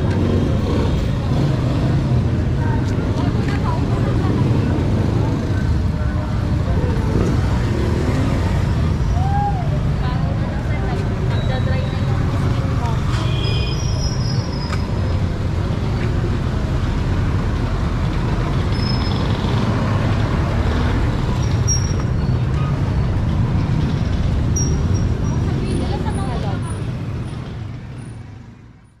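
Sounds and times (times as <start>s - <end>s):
people's voices: 0.0s - 19.0s, 24.8s - 27.8s
passing vehicle engines rumbling: 0.0s - 29.0s.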